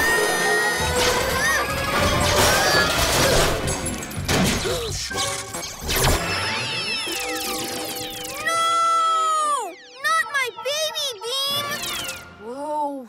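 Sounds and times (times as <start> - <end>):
cartoon crash: 0.7 - 9.0.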